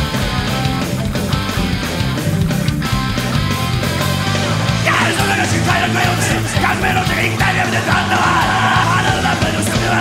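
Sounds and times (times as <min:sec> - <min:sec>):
thrash metal music: 0:00.0 - 0:10.0.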